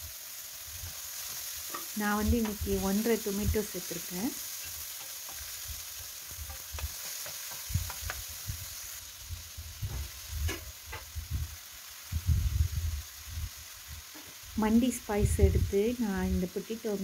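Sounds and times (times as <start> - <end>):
oil sizzling in a frying pan: 0.0 - 17.0
wooden spatula knocking against pan: 6.5 - 8.3.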